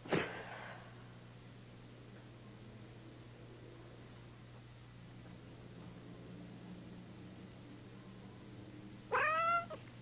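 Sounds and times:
cat meowing: 9.1s - 9.8s.

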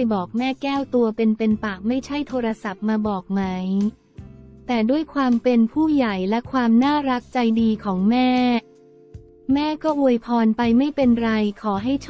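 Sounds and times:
person narrating: 0.0s - 4.0s
faint background music: 0.0s - 12.0s.

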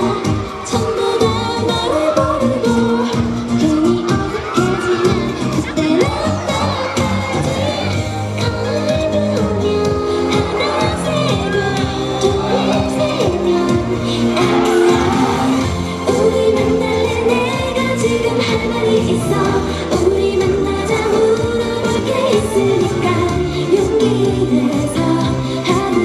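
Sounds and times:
pop song with female vocals: 0.0s - 26.0s.

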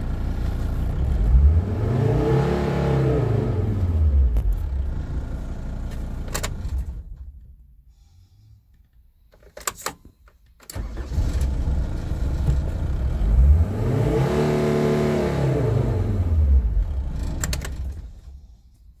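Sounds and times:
van engine revving: 0.0s - 7.2s, 10.8s - 18.5s.

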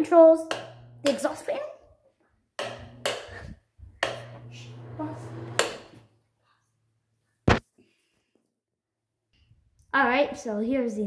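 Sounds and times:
exhaust fan humming: 0.5s - 1.4s, 2.6s - 6.0s.

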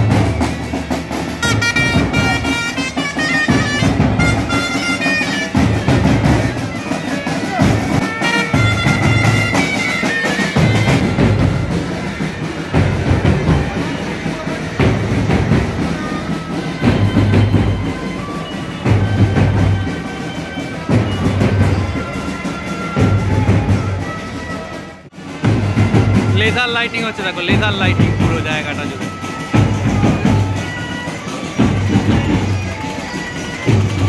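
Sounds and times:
bagpipes playing a march: 0.0s - 34.0s
drum beats: 0.0s - 34.0s.

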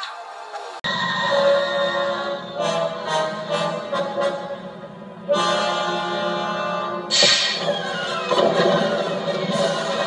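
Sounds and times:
dramatic orchestral film score: 0.9s - 10.0s.

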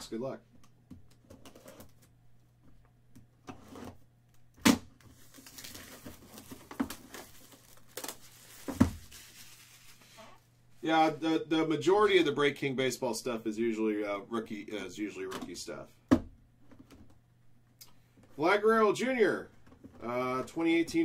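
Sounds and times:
plastic wrapping crinkling: 5.0s - 10.4s.

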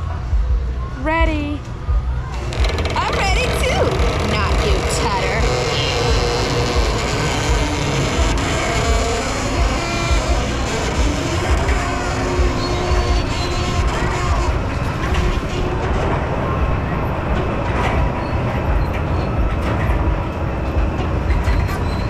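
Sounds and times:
low rumble: 0.0s - 22.0s
voices: 0.8s - 6.6s
carousel music: 1.6s - 21.2s.

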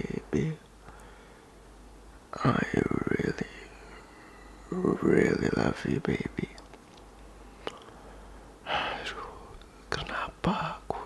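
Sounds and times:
man murmuring and whispering: 0.0s - 0.7s, 2.3s - 6.7s, 8.6s - 11.0s.

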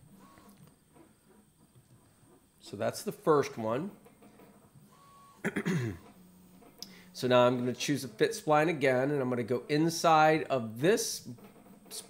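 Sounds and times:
man clearing his throat: 5.4s - 6.0s.

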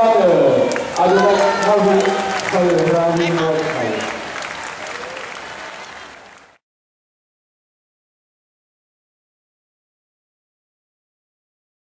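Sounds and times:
crowd applauding: 0.5s - 6.6s.

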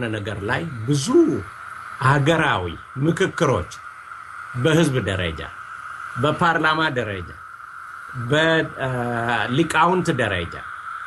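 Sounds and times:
man speaking: 0.0s - 3.8s, 4.6s - 5.6s, 6.2s - 7.4s, 8.2s - 10.7s
faint steady tone: 0.0s - 11.0s.

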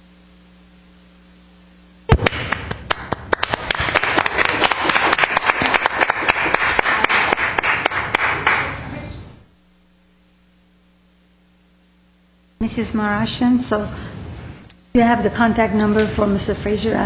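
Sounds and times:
small group applauding: 2.1s - 9.0s.

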